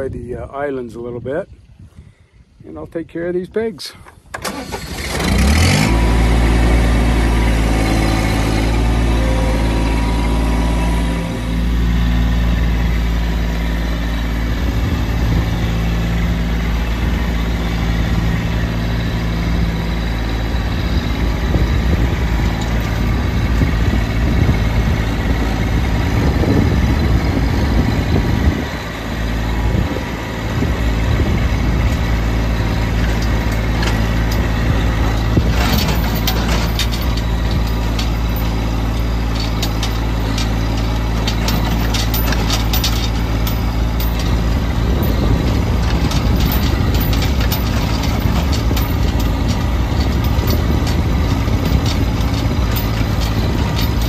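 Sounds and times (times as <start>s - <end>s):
tractor engine running: 3.9s - 54.0s.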